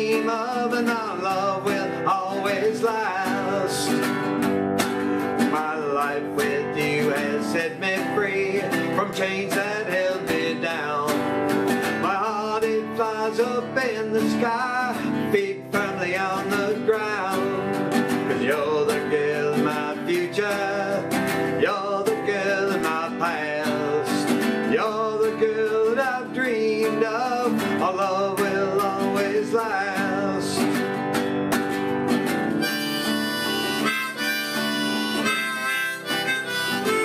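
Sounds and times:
man singing: 0.0 - 4.4, 5.4 - 31.0, 32.6 - 37.0
acoustic guitar strumming: 0.0 - 37.0
harmonica melody: 32.5 - 37.0.

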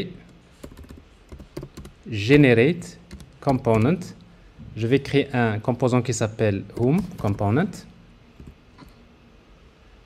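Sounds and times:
computer keyboard keystrokes: 0.6 - 2.0, 3.1 - 4.0.

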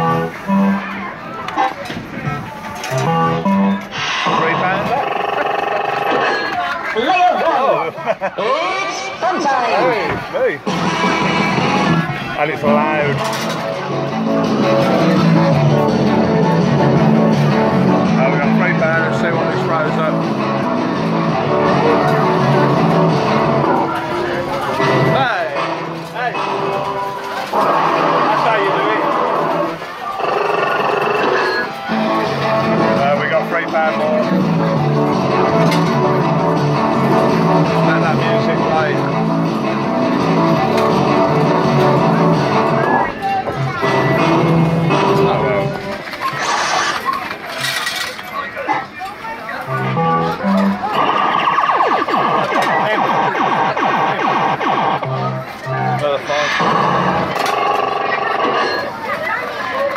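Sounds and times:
slot reels spinning: 27.3 - 31.7, 56.3 - 59.0
fruit machine music with voice samples: 49.7 - 59.0.

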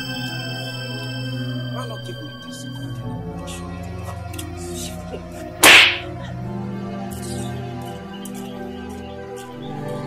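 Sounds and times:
soft background music: 0.0 - 10.0
hard slap on face: 5.6 - 6.1.

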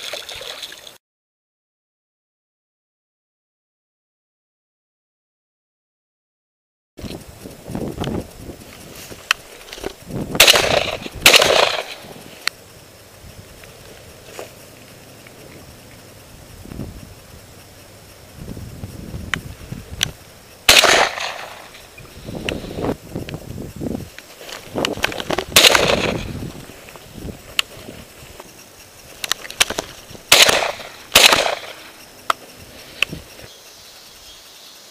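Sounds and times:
shotgun shots: 10.4 - 12.2, 20.7 - 21.8, 25.5 - 26.3, 29.6 - 31.9
rustling: 19.4 - 33.6.

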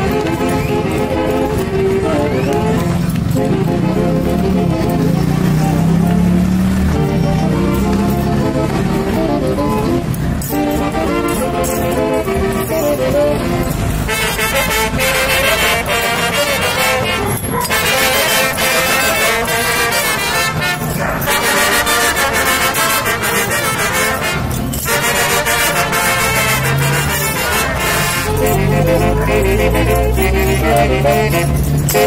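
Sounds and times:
brass band dance music: 0.0 - 32.0.

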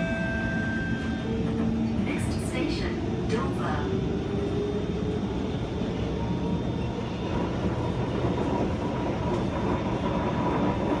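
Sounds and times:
train wheels rumbling: 0.0 - 11.0.

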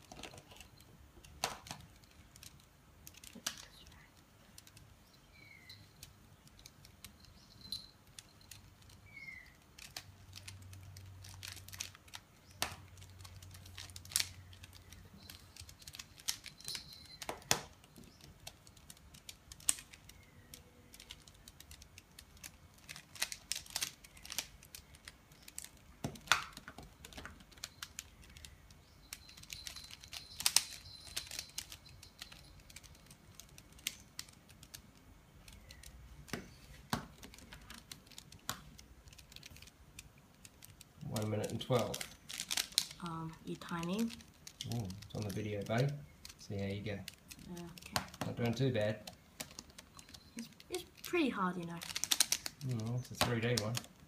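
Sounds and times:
puzzle cube plastic clicks: 0.0 - 54.0.

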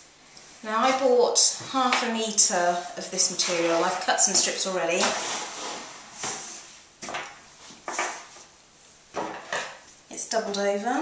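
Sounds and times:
cloth rustling on wooden table: 3.3 - 9.9.

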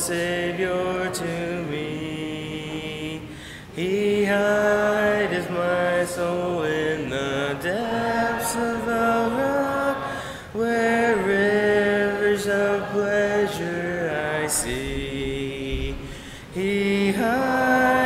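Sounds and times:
congregation singing a hymn: 0.0 - 18.0.

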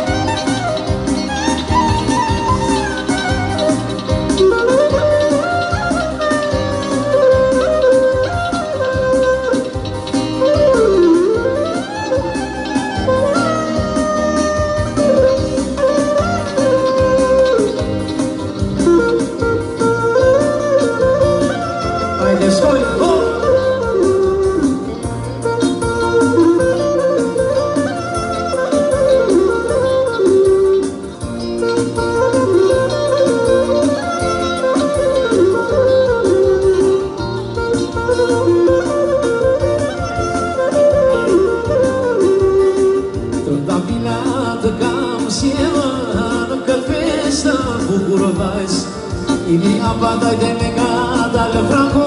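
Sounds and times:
band accompaniment with low beat: 0.0 - 52.0
clarinet playing folk melody: 0.0 - 52.0
man singing into microphone: 22.1 - 24.2, 43.4 - 52.0.

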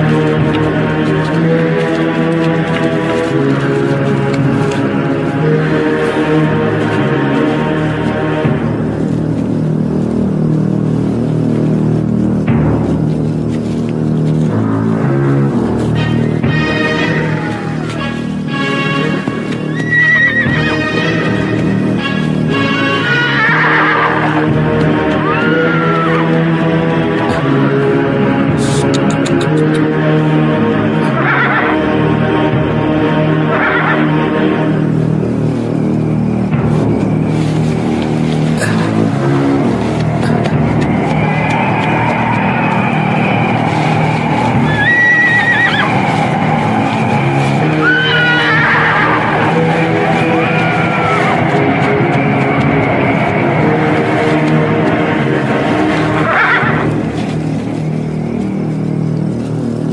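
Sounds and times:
background music: 0.0 - 59.9
noisy rush: 0.0 - 59.9
horse whinnying: 19.7 - 20.8, 22.8 - 24.4, 31.1 - 31.8, 44.7 - 46.0, 47.7 - 49.4, 56.1 - 56.9.

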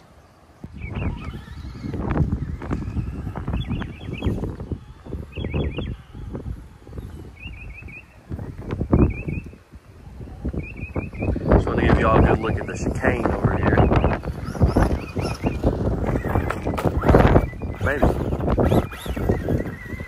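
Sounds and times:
bird chirping: 0.0 - 20.0
wind buffeting microphone: 0.0 - 20.0.

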